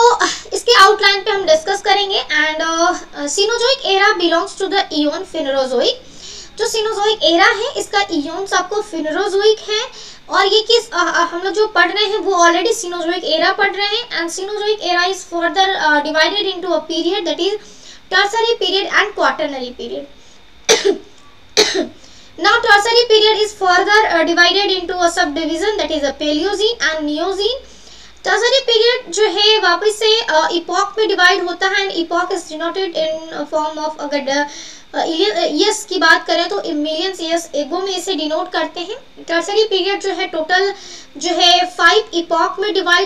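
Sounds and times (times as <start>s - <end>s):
woman speaking high-pitched: 0.0s - 6.0s, 6.6s - 20.2s, 22.4s - 43.0s
woman coughing: 20.7s - 22.0s.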